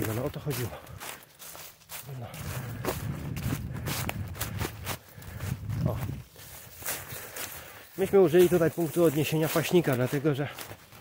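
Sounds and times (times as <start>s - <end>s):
footsteps in dry leaves: 0.0s - 11.0s.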